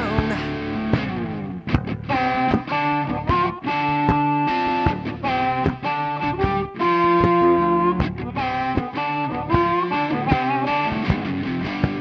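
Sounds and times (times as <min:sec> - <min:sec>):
guitar notes and chords: 0:00.0 - 0:12.0.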